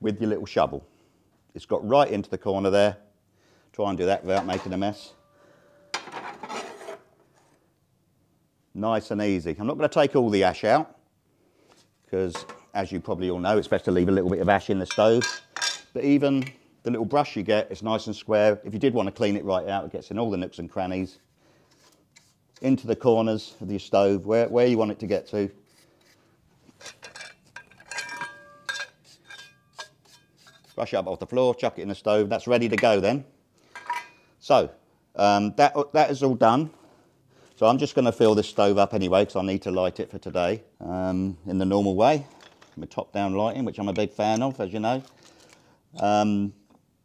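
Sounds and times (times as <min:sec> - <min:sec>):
brush and shovel scraping steel stove: 0:06.0 - 0:07.5, 0:25.6 - 0:31.0
shovel scraping through ash: 0:06.2 - 0:07.1.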